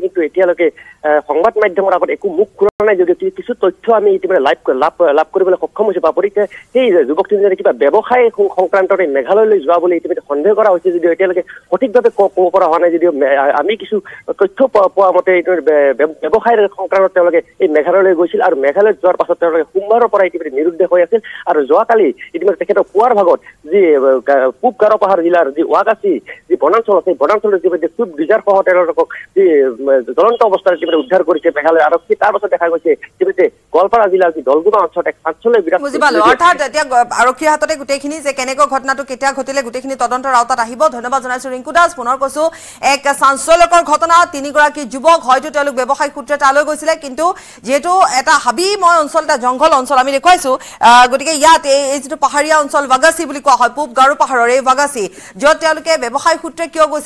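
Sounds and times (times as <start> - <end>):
person speaking over telephone: 24.4 - 37.4
person talking over phone line: 24.5 - 37.2.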